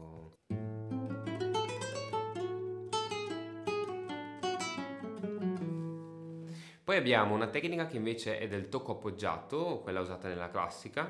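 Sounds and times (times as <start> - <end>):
classical guitar melody plucked: 0.0 - 6.6.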